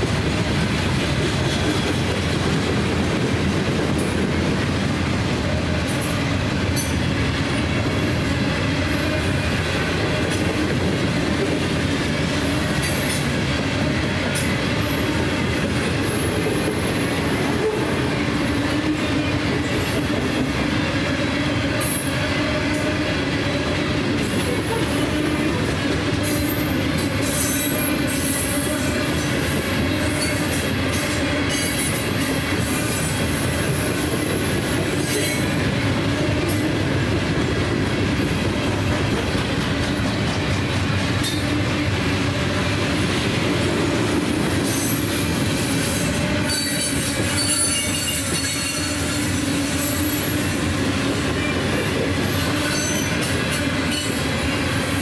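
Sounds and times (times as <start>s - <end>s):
steel wheels rolling on rail: 0.0s - 55.0s
high-pitched wheel squeal: 44.7s - 54.2s.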